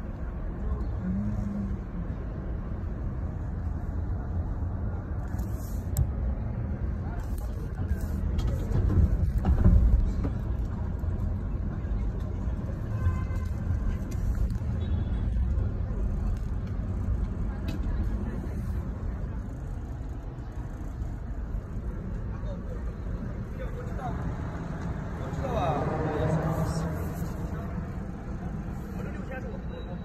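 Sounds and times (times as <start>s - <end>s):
car engine and road noise: 0.0s - 30.0s.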